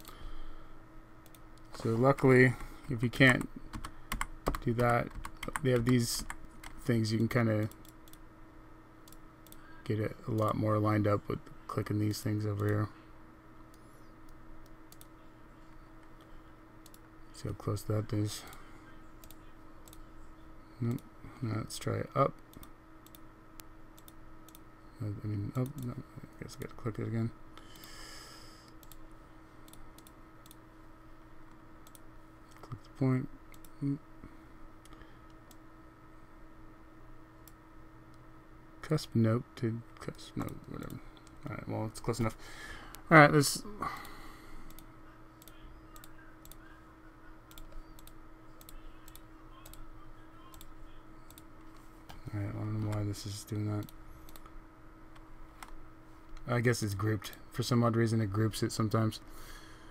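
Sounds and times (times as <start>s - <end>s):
low electrical hum: 0.0s - 59.9s
computer mouse clicks: 1.2s - 1.7s, 13.7s - 15.1s, 16.0s - 17.0s, 22.4s - 24.6s, 28.7s - 29.0s, 29.7s - 30.6s, 31.4s - 32.8s, 44.7s - 46.6s, 47.5s - 49.8s, 51.3s - 52.2s, 53.8s - 56.5s.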